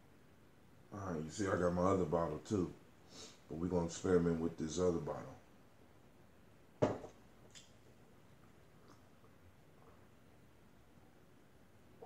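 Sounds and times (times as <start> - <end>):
dull knock: 6.8 - 7.1.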